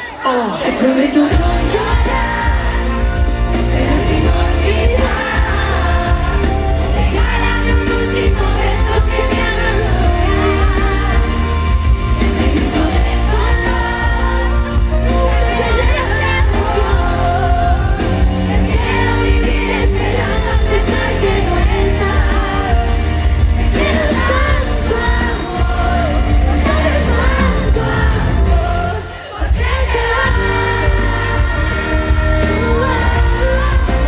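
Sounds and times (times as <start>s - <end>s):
live pop band: 0.0s - 34.0s
woman singing amplified: 0.0s - 34.0s
heavy bass: 1.3s - 34.0s.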